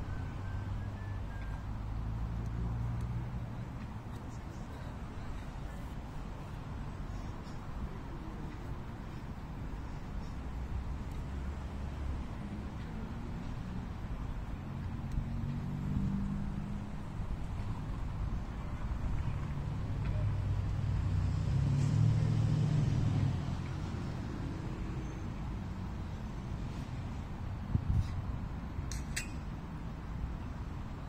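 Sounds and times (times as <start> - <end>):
road traffic rumble: 0.0 - 31.0
vehicle engine hum: 0.0 - 31.0.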